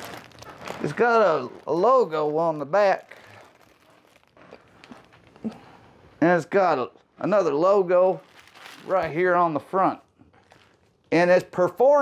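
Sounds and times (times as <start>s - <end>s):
clothing rustling: 0.0s - 11.0s.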